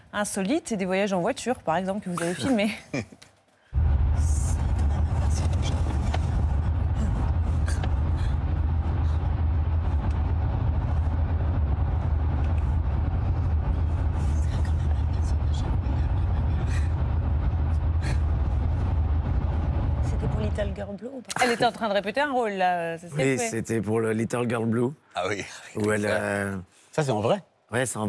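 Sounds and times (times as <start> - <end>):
car cabin road rumble: 3.8 - 21.1.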